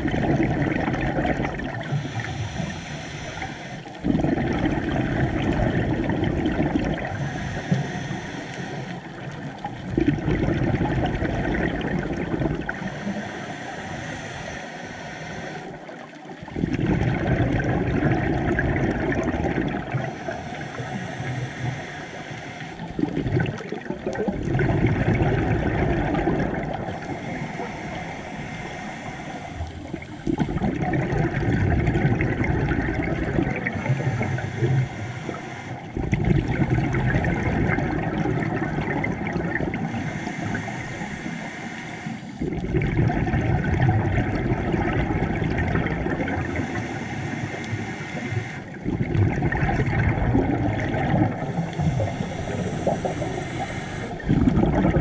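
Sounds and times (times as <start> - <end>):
regulator inhale hiss: 1.8 - 4.0, 6.9 - 9.9, 12.7 - 16.1, 19.8 - 23.0, 26.6 - 30.4, 33.6 - 36.0, 39.7 - 42.6, 46.3 - 48.9, 50.9 - 54.3
bubbling exhaust rush: 48.8 - 55.0.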